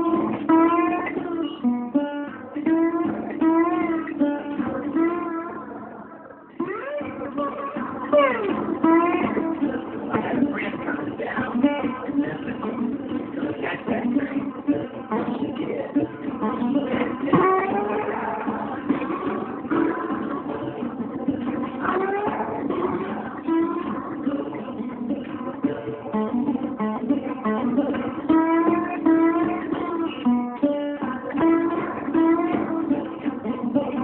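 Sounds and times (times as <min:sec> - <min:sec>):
slide guitar blues: 0:00.0 - 0:34.0.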